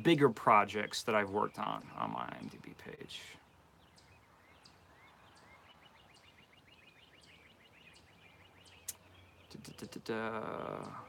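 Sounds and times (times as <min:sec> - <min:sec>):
bird chirping rapidly: 0:00.0 - 0:11.0.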